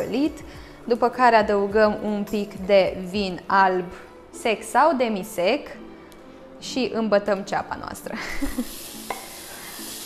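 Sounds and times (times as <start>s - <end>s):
onion and garlic sizzling in oil: 8.4s - 10.0s.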